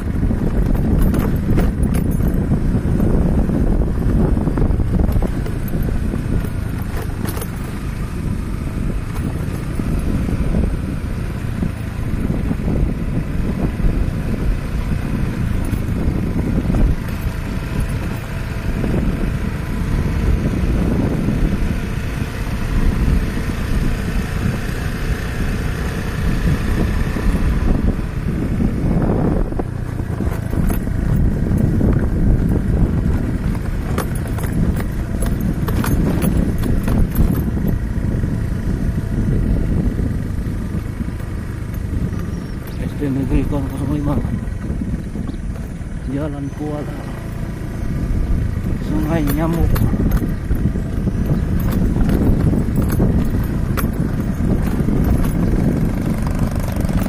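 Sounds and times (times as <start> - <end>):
vehicle rumbling on rough road: 0.0 - 57.0
clicks and rattles: 0.4 - 3.1, 5.0 - 7.9, 9.0 - 10.3, 15.3 - 18.6, 29.8 - 37.8, 41.1 - 44.2, 48.6 - 57.0.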